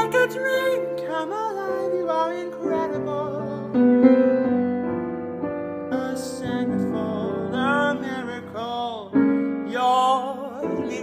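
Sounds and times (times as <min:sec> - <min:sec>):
woman singing: 0:00.0 - 0:03.8
jazz grand piano: 0:00.0 - 0:11.0.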